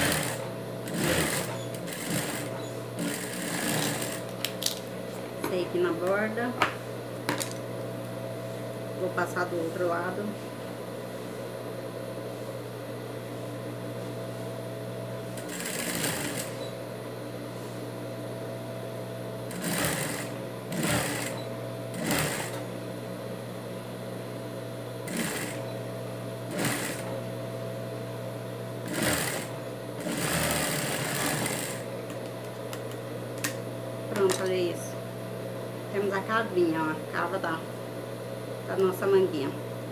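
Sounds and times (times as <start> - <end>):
sewing machine stitching: 0.0 - 4.2, 15.4 - 16.6, 19.5 - 22.6, 25.1 - 25.6, 26.5 - 27.1, 28.9 - 31.8
sewing machine motor humming: 0.0 - 4.3, 15.4 - 16.8, 19.5 - 22.6, 25.0 - 25.6, 26.5 - 27.2, 28.8 - 31.9.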